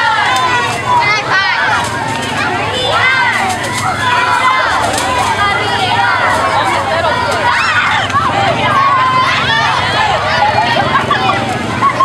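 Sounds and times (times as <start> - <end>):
girls shouting and cheering: 0.0 - 12.0
street crowd noise: 0.0 - 12.0.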